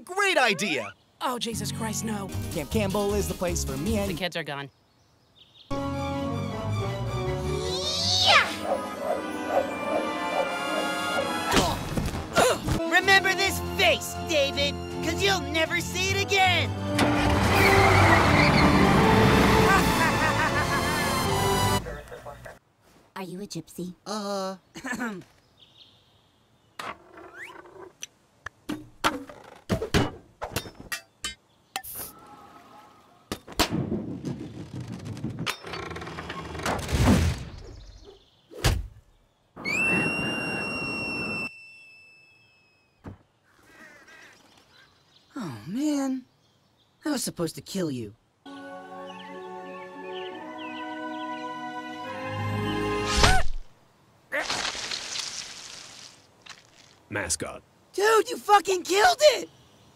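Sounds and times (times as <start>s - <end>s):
high squealing tone: 39.6s - 43.0s
sharp knocks and thuds: 43.0s - 43.3s
wet hiss of blood spraying: 54.4s - 57.0s.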